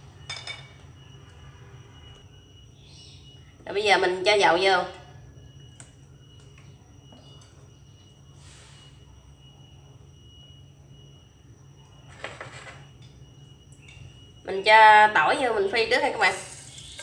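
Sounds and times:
electric cooktop hum: 0.0 - 17.0
thin high whine: 0.0 - 17.0.

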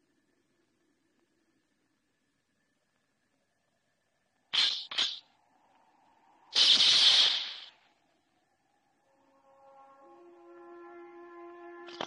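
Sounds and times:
gunshots: 6.5 - 7.8.

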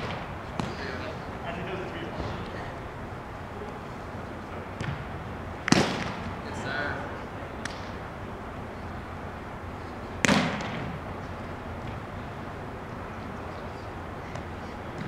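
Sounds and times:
ball smacks echoing in hall: 0.0 - 1.1, 4.8 - 6.4, 7.6 - 8.0, 10.2 - 11.0, 11.8 - 12.1.

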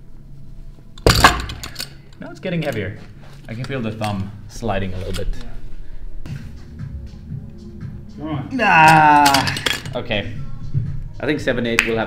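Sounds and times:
weight plates clinking and clanking: 8.8 - 10.0.

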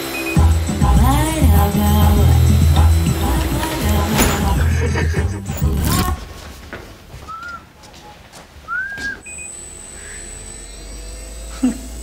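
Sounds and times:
short rising whistles: 7.3 - 7.7, 8.6 - 11.0.

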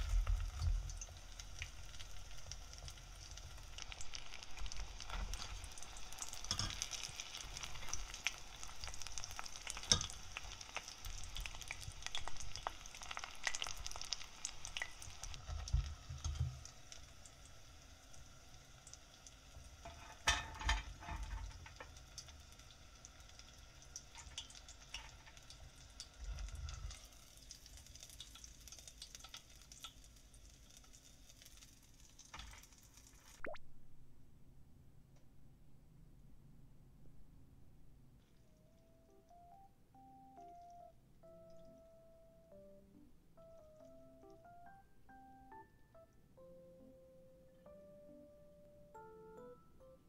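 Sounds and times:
oil crackling and sizzling: 0.0 - 33.6.

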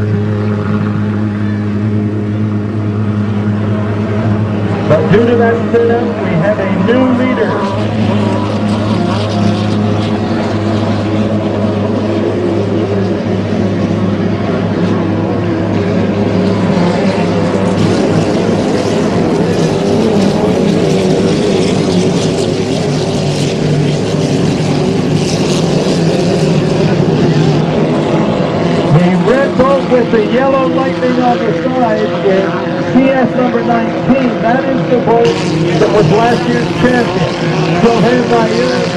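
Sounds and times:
racing boat engines droning: 0.0 - 38.9.

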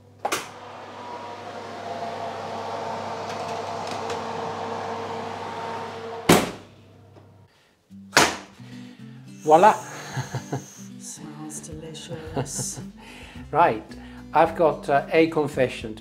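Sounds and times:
oven fan whirring: 0.2 - 7.4.

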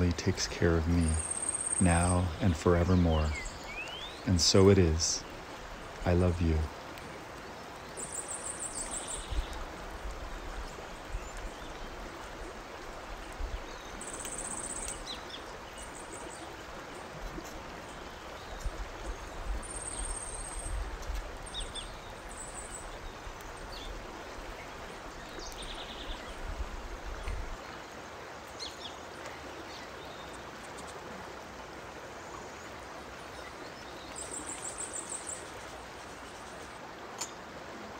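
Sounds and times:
steady rushing hiss: 0.0 - 37.9.

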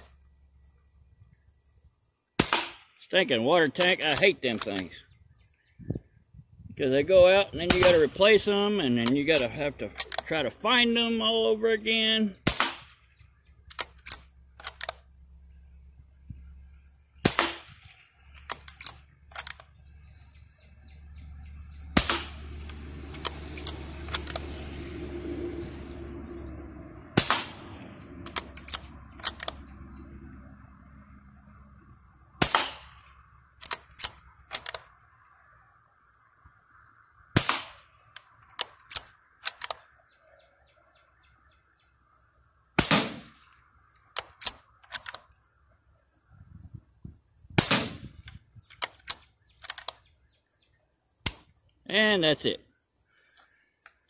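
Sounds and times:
low steady noise: 0.0 - 54.0
rifle shots: 2.4 - 3.0, 7.6 - 11.0, 12.4 - 13.0, 17.2 - 19.6, 21.9 - 24.6, 27.2 - 29.6, 32.4 - 34.9, 37.4 - 37.9, 42.8 - 43.4, 47.6 - 50.0.

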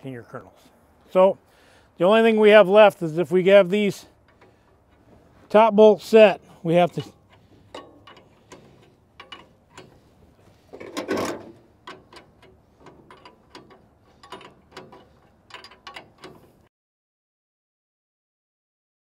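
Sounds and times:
wrench tightening bolts: 6.7 - 16.7
metallic clicks and clinks: 6.9 - 10.1, 10.8 - 16.7.

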